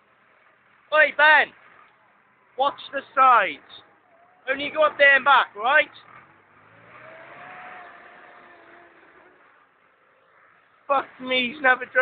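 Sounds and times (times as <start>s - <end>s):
telehandler engine running: 0.0s - 12.0s.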